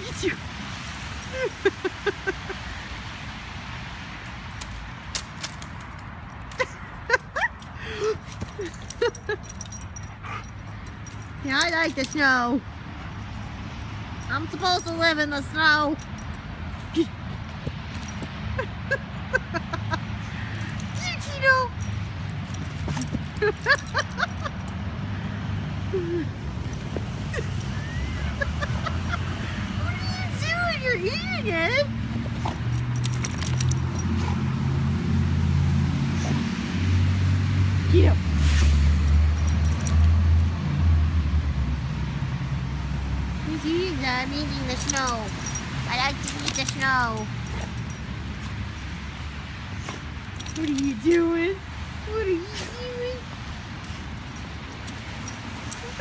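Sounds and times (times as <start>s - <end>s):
dog collar tags jingling: 0.0s - 1.8s, 4.2s - 25.4s, 26.3s - 34.6s, 38.9s - 40.7s, 43.5s - 52.0s, 52.7s - 56.0s
husky yipping and whining: 47.4s - 49.0s.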